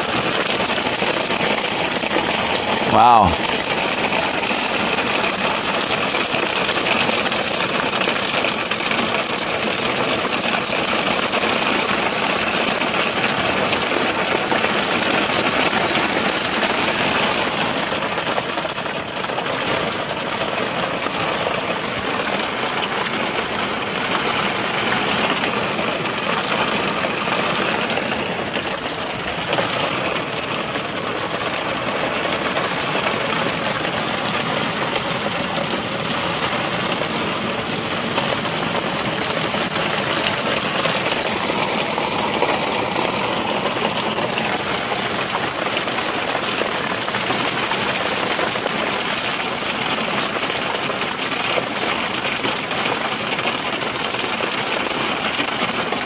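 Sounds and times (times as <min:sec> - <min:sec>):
rain and hail on car roof: 0:00.0 - 0:56.0.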